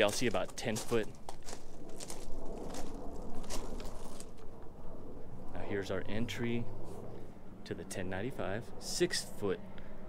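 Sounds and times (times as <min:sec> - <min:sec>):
faint footsteps: 0:00.0 - 0:04.7
wind buffeting microphone: 0:00.0 - 0:08.8.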